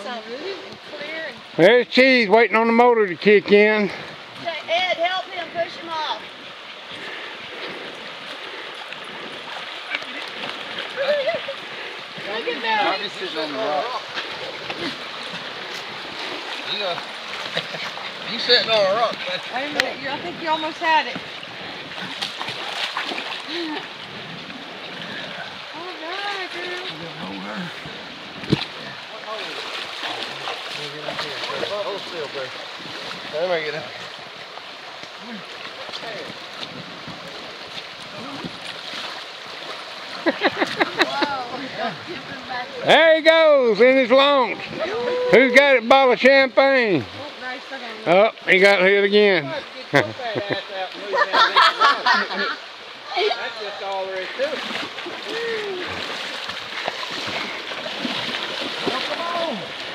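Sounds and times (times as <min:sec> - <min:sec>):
creek water running over rocks: 0:00.0 - 0:59.9
water splashing: 0:00.0 - 0:59.9
voices and laughter: 0:09.8 - 0:15.8, 0:40.1 - 0:46.0, 0:49.4 - 0:56.0.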